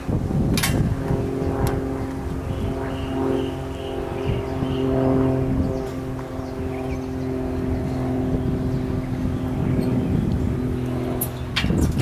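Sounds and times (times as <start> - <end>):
steady engine drone: 0.0 - 12.0.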